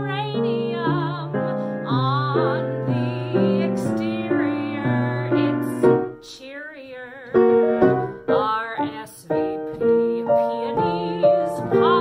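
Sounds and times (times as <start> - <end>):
grand piano accompaniment: 0.0 - 12.0
woman singing with vibrato: 0.0 - 12.0.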